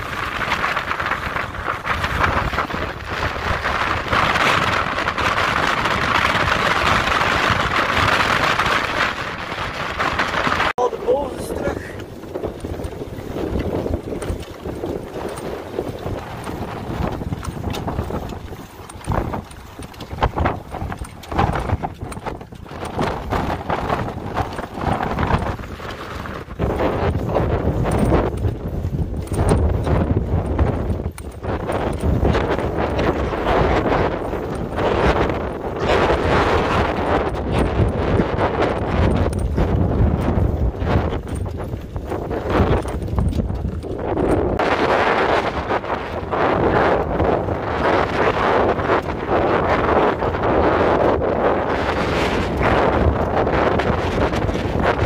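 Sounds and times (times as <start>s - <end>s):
gusting wind on microphone: 0.0s - 55.0s.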